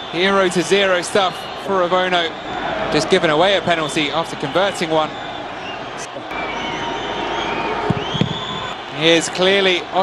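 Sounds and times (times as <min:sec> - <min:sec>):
crowd of voices: 0:00.0 - 0:10.0
whistles: 0:04.4 - 0:08.8.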